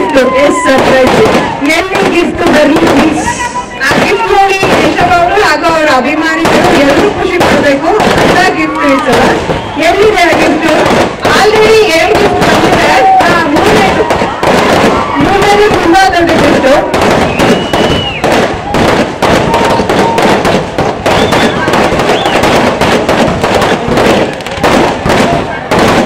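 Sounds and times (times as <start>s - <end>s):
people shouting: 0.0s - 26.0s
sharp pops and cracks: 17.0s - 26.0s
high whistle: 17.3s - 18.3s, 21.1s - 22.4s.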